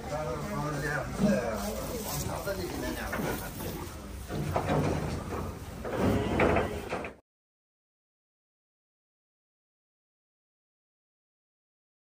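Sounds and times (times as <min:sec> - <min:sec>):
cattle feeding at hay trough: 0:00.0 - 0:07.1.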